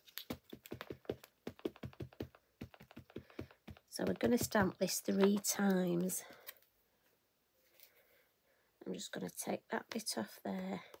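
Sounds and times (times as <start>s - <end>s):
ink pad tapping on rubber stamp: 0.6s - 5.5s.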